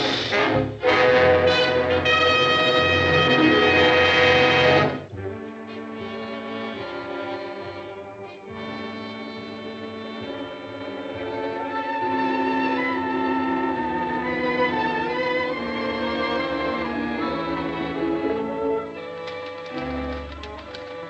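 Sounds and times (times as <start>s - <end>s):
brass-led orchestral music: 0.0s - 21.0s
strings holding notes: 0.8s - 21.0s.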